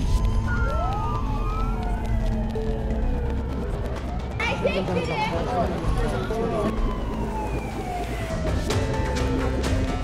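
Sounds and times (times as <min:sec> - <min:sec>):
emergency sirens wailing: 0:00.0 - 0:10.0.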